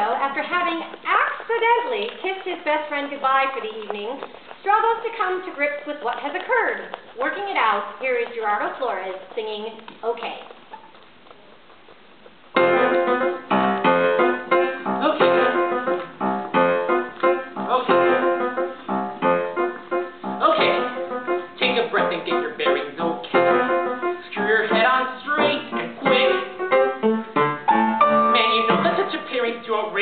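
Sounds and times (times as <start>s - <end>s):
piano playing: 12.5s - 30.0s.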